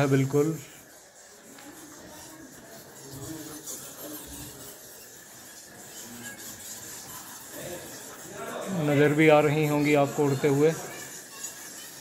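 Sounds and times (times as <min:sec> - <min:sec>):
bats calling: 0:00.0 - 0:12.0.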